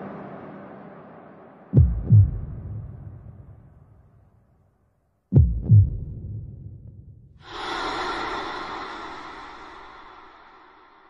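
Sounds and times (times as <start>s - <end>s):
heartbeat thuds: 1.8s - 3.4s, 5.4s - 7.1s
breathy rushing sound: 7.4s - 11.0s.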